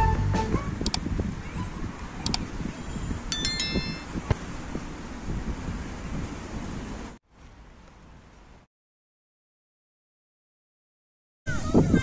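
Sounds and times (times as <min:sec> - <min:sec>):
wind noise: 0:00.0 - 0:07.1, 0:11.5 - 0:12.0
bright bell chime: 0:03.3 - 0:04.2.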